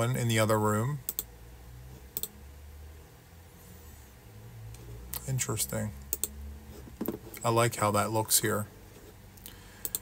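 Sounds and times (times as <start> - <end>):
faint low hum: 0.0 - 10.0
computer mouse clicking: 6.1 - 6.4.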